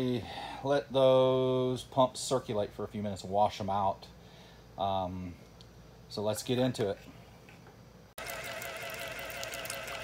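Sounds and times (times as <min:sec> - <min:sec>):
small pump motor whining: 0:08.2 - 0:10.0.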